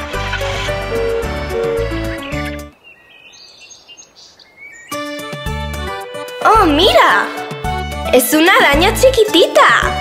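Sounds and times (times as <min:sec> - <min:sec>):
music: 0:00.0 - 0:02.8, 0:04.9 - 0:10.0
faint bird chirps: 0:00.9 - 0:05.2.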